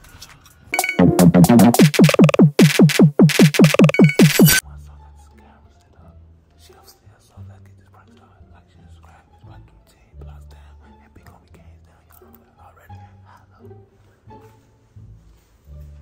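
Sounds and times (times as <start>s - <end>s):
faint whispered speech: 4.6s - 14.3s
quiet music with deep bass: 4.6s - 16.0s.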